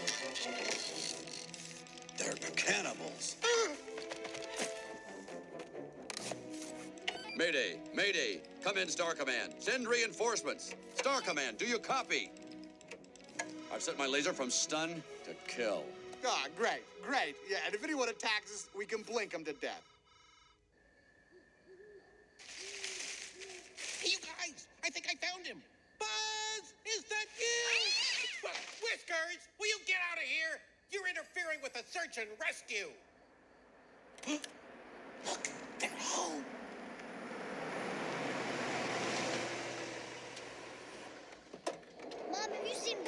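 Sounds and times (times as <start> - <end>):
car engine and tyres: 0.0 - 15.0, 33.3 - 43.0
night ambience: 1.2 - 27.8, 28.8 - 43.0
owl hooting: 21.3 - 23.8.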